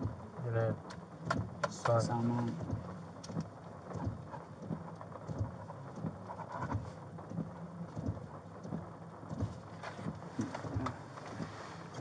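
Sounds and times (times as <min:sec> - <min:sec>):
muffled bumps: 0:00.0 - 0:12.0
rain pattering on car roof: 0:00.0 - 0:12.0.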